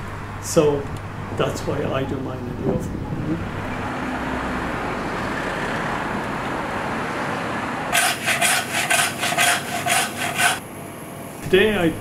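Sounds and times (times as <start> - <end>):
street background noise: 0.0 - 9.0
hand saw cutting through bone: 8.0 - 10.6.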